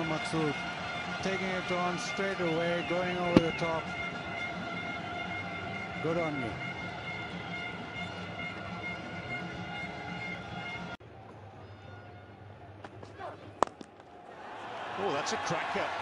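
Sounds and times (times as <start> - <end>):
stadium crowd noise: 0.0 - 16.0.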